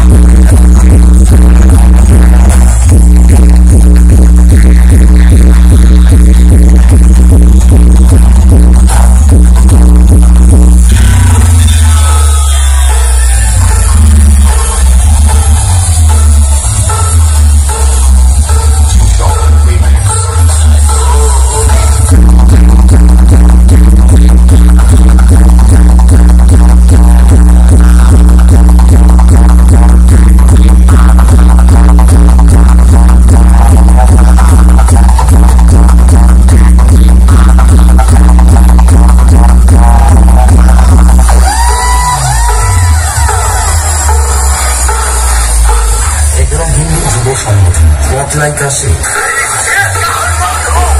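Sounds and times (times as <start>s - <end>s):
fast heavy bass beat: 0.0s - 50.9s
loud dance music with heavy bass: 0.0s - 50.9s.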